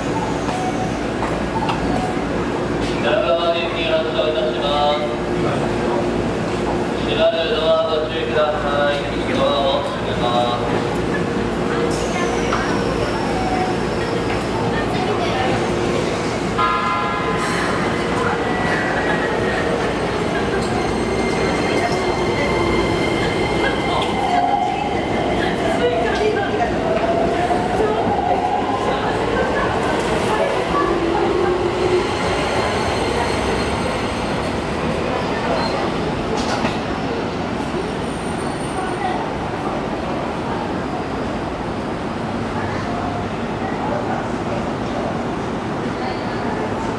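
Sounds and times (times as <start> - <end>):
wheels rumbling on rail: 8.5 - 46.9.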